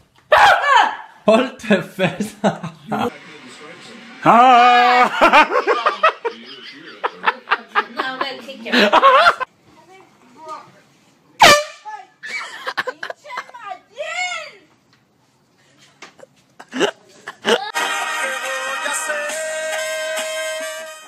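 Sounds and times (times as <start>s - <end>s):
people laughing: 1.7s - 3.5s, 4.2s - 9.5s, 12.2s - 13.4s, 16.6s - 17.8s
people screaming: 4.2s - 5.3s
air horn blasting: 11.4s - 11.9s, 17.8s - 21.0s.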